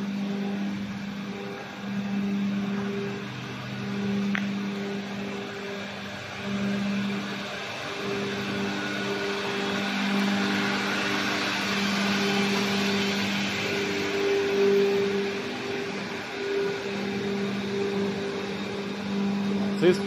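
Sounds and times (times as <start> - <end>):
electric motors humming: 0.0 - 20.0
pulsing low hum: 0.0 - 20.0.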